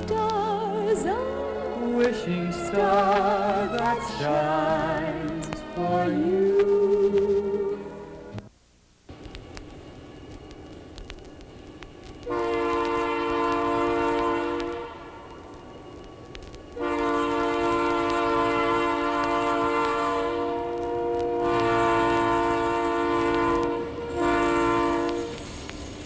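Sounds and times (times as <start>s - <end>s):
multi-tone train horn blasts: 1.3s - 8.3s, 12.2s - 15.8s, 16.7s - 25.8s.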